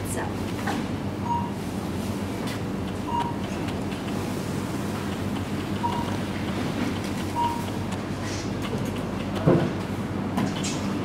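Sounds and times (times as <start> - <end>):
store hum and hiss: 0.0 - 11.0
short electronic beeps: 1.2 - 1.6, 3.1 - 3.4, 5.8 - 6.2, 7.3 - 7.7.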